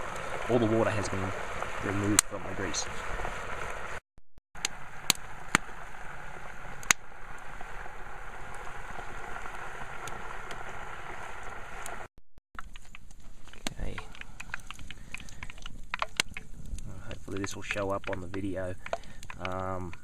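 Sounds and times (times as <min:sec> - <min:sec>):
fat sizzling and bubbling: 0:00.0 - 0:04.0, 0:04.6 - 0:20.0
sharp pops of fat: 0:13.6 - 0:16.5.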